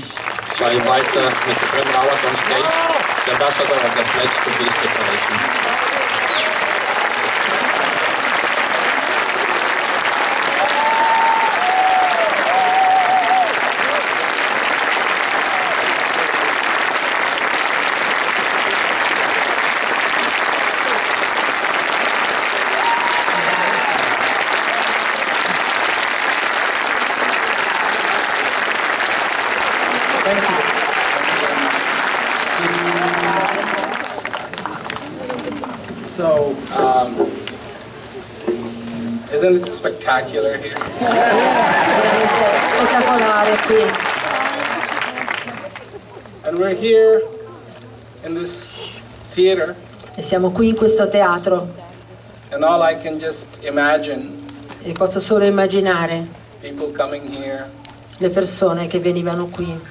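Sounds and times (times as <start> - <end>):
audience applauding: 0.0 - 39.4, 40.6 - 46.7
voices: 32.6 - 48.1.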